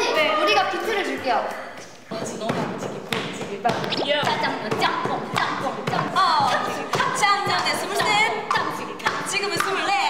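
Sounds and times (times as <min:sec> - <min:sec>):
rhythmic thumping beat: 0:02.0 - 0:10.0.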